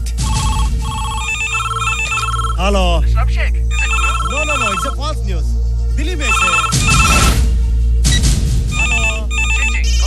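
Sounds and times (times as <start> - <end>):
desk telephone ringing: 0.3 - 2.6, 3.7 - 5.0, 6.3 - 7.4, 8.7 - 9.8.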